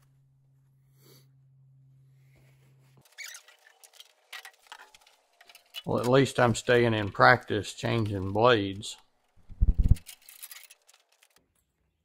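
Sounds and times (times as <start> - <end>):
small clicks scrapes and knocks: 3.0 - 6.8, 9.0 - 11.5
man speaking: 5.9 - 9.0.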